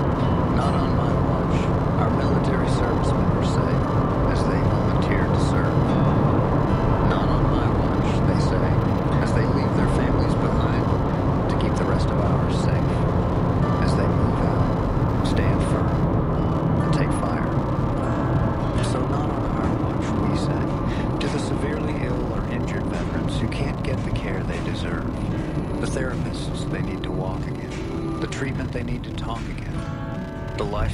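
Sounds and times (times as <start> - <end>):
car road and engine noise: 0.0 - 30.9
faint talk from car radio: 0.0 - 30.9.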